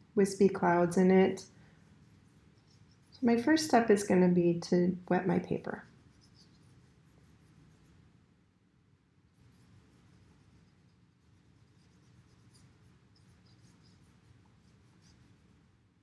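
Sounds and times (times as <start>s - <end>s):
wet paintbrush strokes on paper: 0.0s - 8.1s, 9.3s - 15.8s.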